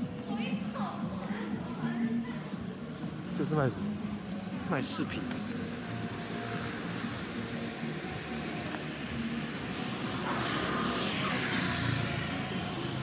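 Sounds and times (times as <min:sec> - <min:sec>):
road traffic hum: 0:00.0 - 0:13.0
vehicle passing: 0:05.3 - 0:13.0.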